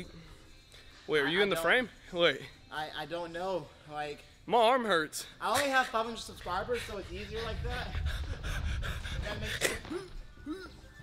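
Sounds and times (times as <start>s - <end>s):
low rumble: 6.5s - 9.6s
man breathing hard: 6.8s - 9.9s.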